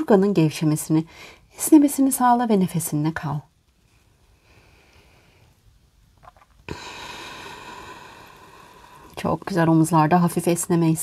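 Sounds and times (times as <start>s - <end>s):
woman breathing out: 6.7s - 9.2s.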